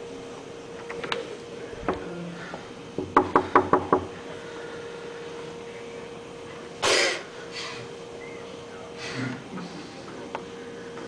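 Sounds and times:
knuckles knocking on door: 3.0 - 4.2.

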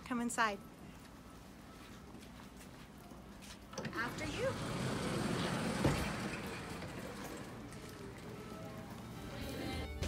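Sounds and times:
sliding wooden door rumbling: 4.5 - 7.8.

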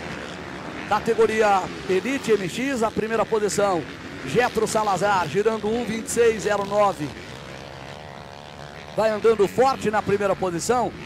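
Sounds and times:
distant motorbike engines droning: 0.0 - 11.0.

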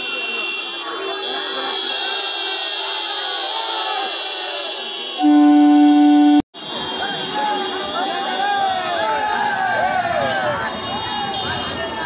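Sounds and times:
crowd shouting: 0.0 - 6.0, 6.6 - 12.0
high-pitched electronic buzzer: 5.2 - 6.4
train horn blast: 5.2 - 6.4.

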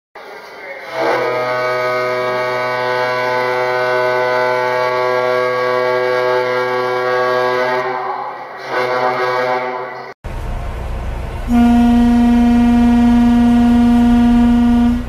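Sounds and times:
ferry horn long blast: 0.8 - 10.1, 11.3 - 15.0.

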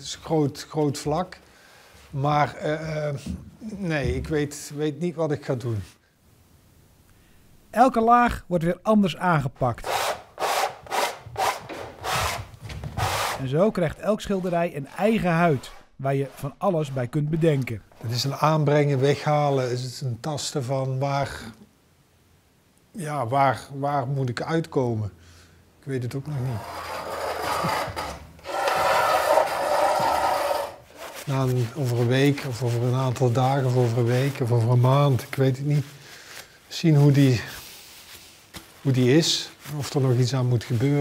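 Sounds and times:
scraper scraping canvas: 9.8 - 13.5, 14.2 - 19.4, 26.3 - 34.8
paintbrush sweeping on canvas: 29.8 - 36.3, 36.9 - 39.0.

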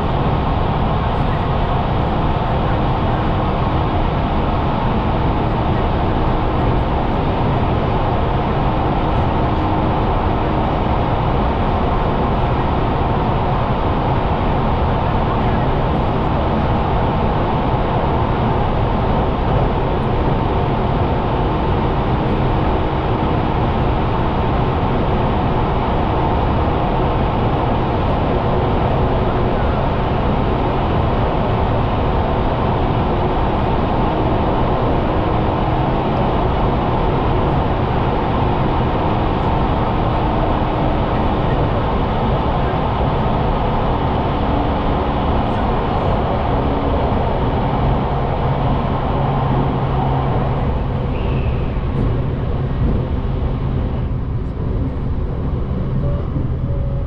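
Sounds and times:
train running inside carriage: 0.0 - 57.0.

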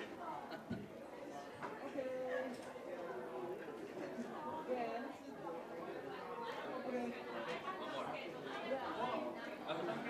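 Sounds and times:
crowd chatting in a hall: 0.0 - 10.0.

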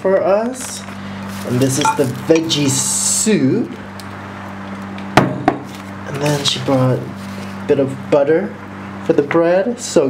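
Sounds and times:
low steady hum: 0.8 - 4.8
glass bowl knocking on stone: 1.8 - 2.5.

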